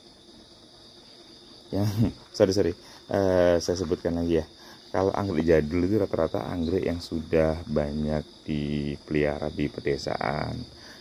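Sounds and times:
insect chorus chirring: 0.0 - 11.0.

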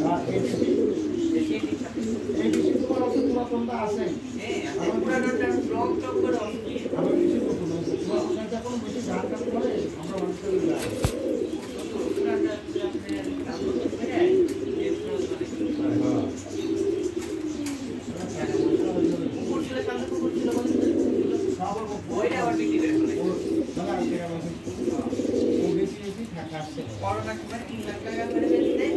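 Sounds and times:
pigeons cooing: 0.0 - 28.9.

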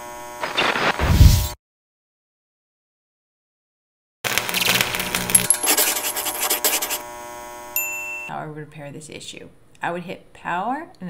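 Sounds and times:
thin high ting: 7.8 - 8.3.

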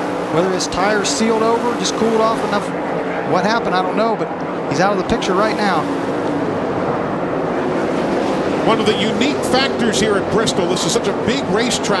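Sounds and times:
race car engines at speed: 0.0 - 12.0.

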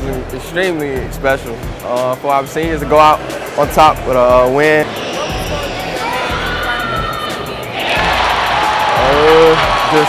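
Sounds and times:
music: 0.0 - 10.0
crowd cheering and yelling: 4.8 - 10.0.

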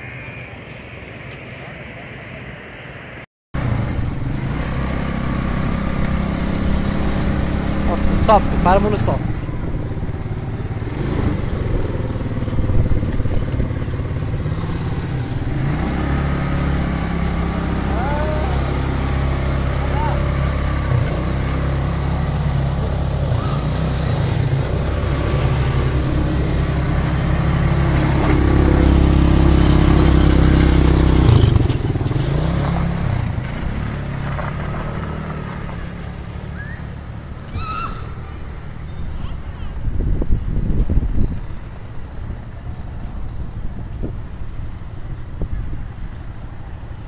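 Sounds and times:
quad bike engine revving: 3.6 - 43.8.

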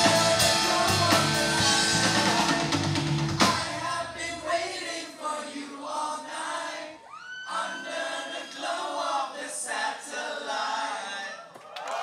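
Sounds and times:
live rock band playing: 0.0 - 3.8
voices singing together: 0.0 - 11.5.

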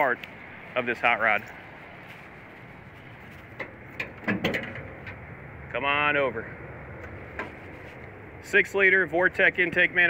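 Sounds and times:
steady low background noise: 0.0 - 10.0.

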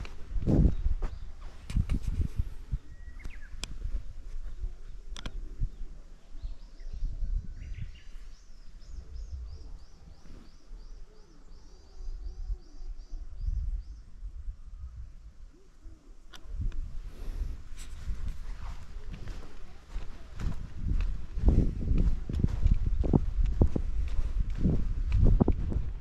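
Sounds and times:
songbird singing: 0.0 - 26.0
bird chirps: 2.7 - 3.8, 4.8 - 14.2.

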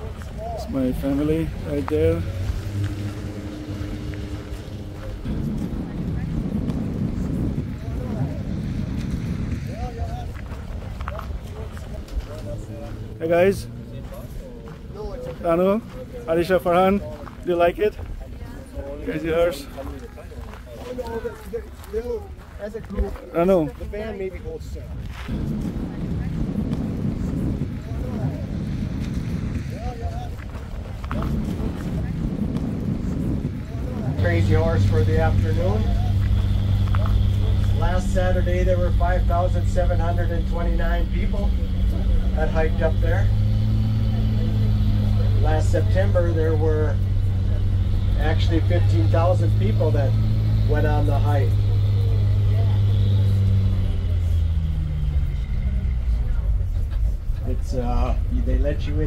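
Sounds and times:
wind on microphone: 0.0 - 20.8, 21.6 - 59.0
bus engine drone: 0.0 - 21.4, 23.2 - 59.0
faint voices: 0.0 - 59.0.

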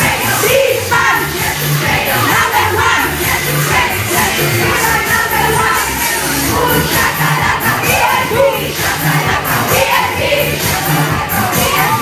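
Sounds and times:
crowd chanting and shouting: 0.0 - 12.0
pop music: 0.0 - 12.0.

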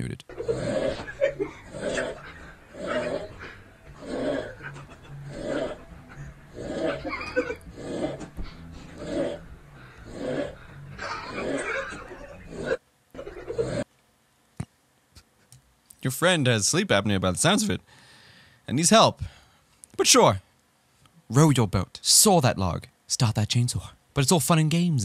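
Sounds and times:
man snoring heavily: 0.3 - 12.8, 13.5 - 13.9.

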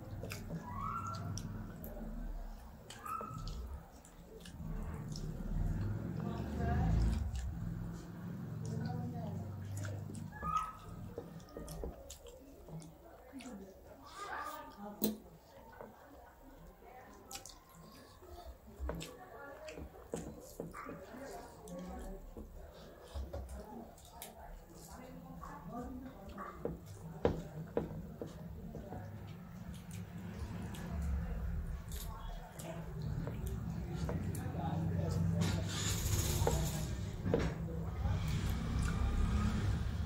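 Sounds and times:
chewing and lip smacks: 0.0 - 36.8, 38.2 - 39.9.

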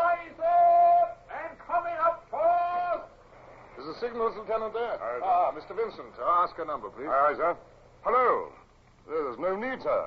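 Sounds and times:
man calling out long hails: 0.0 - 3.2.

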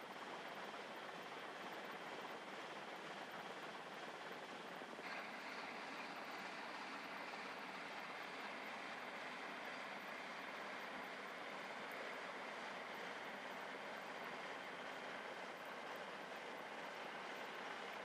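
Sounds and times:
rushing noise of boats on water: 5.0 - 18.0.

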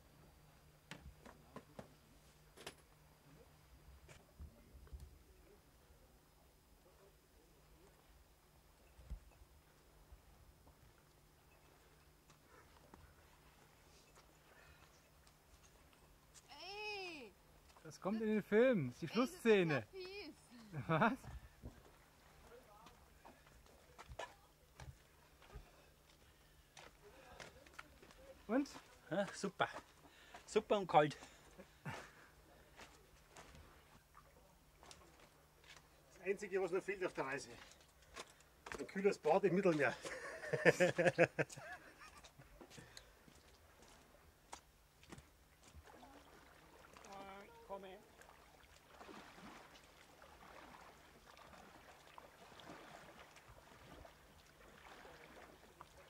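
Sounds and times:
man laughing heartily: 40.0 - 42.4.

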